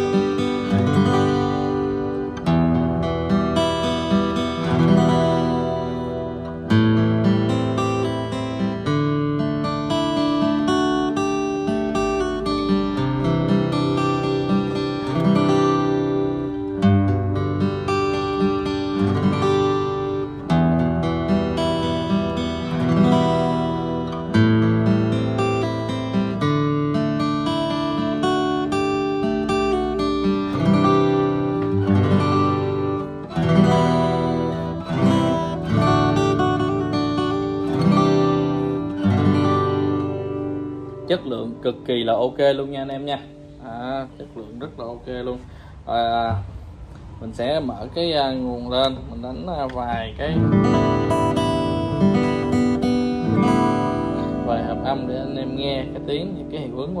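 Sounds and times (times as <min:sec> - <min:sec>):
acoustic guitar fingerpicked chords: 0:00.0 - 0:57.0.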